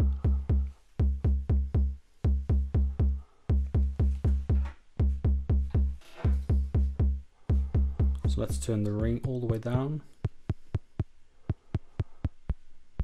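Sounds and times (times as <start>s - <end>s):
electronic kick drum: 0.0s - 12.7s.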